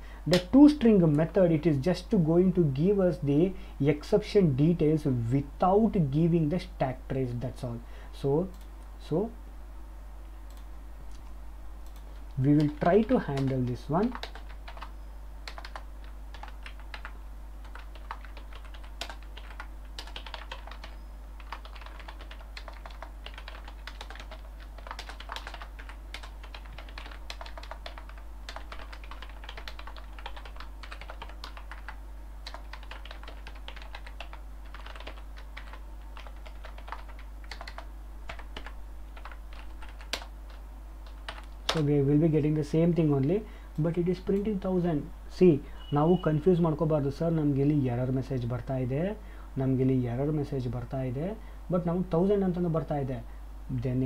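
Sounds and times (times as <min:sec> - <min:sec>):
low electrical hum: 0:00.0 - 0:54.0.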